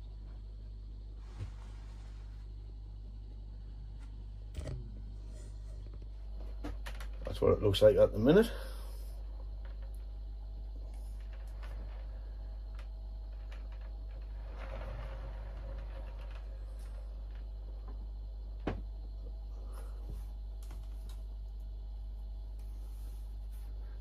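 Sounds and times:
low hum: 0:00.0 - 0:24.0.

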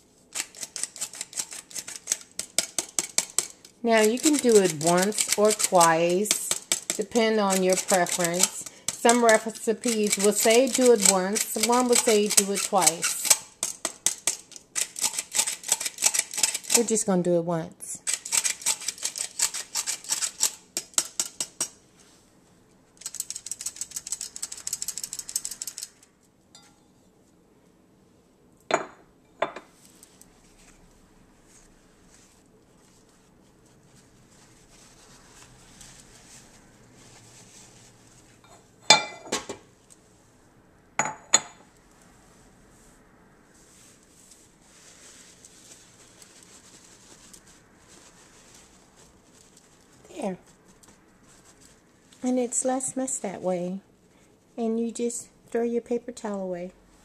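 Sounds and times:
paper towel rustling: 0:29.8 - 0:38.4, 0:42.7 - 0:52.5.

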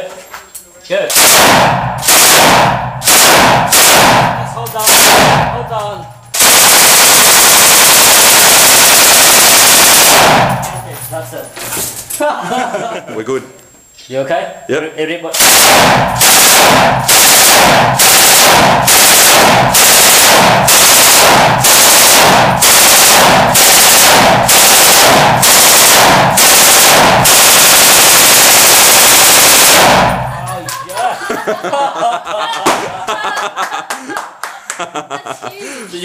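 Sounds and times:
machine gun firing bursts: 0:01.1 - 0:05.7, 0:06.3 - 0:10.8, 0:15.3 - 0:30.5.

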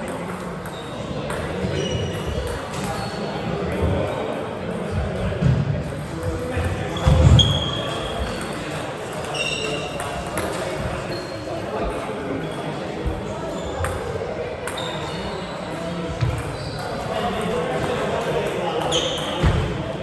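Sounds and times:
shoe squeaks on wooden floor: 0:00.7 - 0:02.3, 0:07.0 - 0:08.4, 0:09.2 - 0:10.0, 0:16.2 - 0:17.0, 0:18.9 - 0:19.5.

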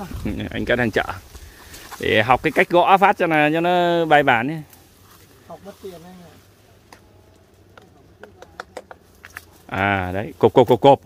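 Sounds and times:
faint sharp tapping knocks: 0:07.7 - 0:09.5.

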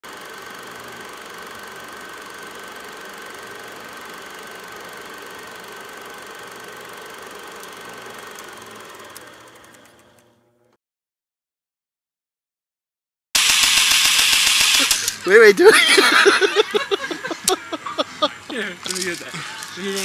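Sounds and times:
machine running with high whine: 0:00.0 - 0:10.5, 0:13.4 - 0:20.0.

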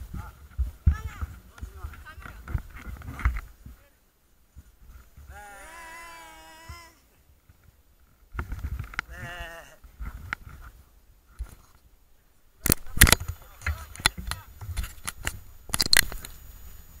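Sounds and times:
wavering voice: 0:05.3 - 0:07.2.

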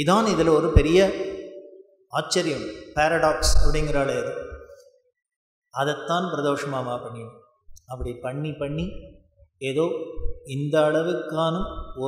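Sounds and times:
man chanting: 0:00.0 - 0:01.4, 0:02.2 - 0:04.6, 0:05.8 - 0:07.3, 0:07.9 - 0:09.0, 0:09.6 - 0:12.0.

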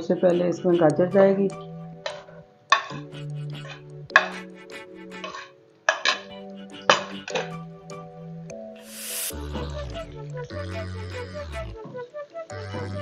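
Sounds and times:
background music with sustained notes: 0:00.0 - 0:13.0
utensil clattering against pan: 0:02.1 - 0:03.1, 0:05.2 - 0:06.3.

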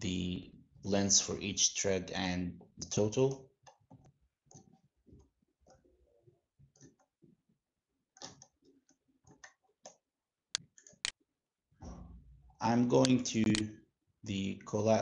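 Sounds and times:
computer mouse clicks: 0:03.6 - 0:04.7, 0:08.2 - 0:08.6.

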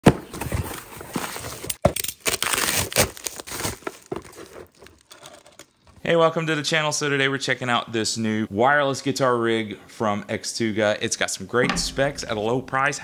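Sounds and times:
cardboard crinkling and scraping: 0:00.1 - 0:05.6.

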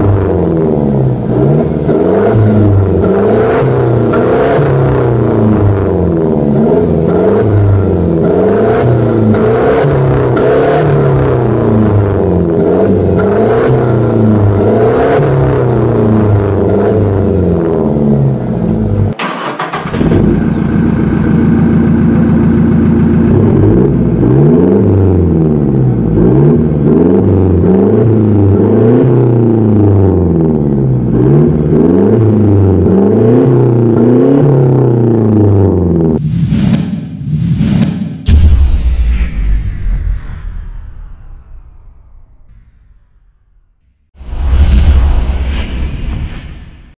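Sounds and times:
diesel engine revving: 0:00.0 - 0:36.2.

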